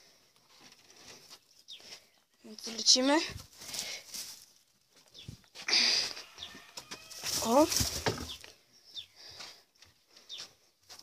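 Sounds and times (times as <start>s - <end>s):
small bird chirping: 1.4s - 3.1s, 5.1s - 5.4s, 8.2s - 9.2s.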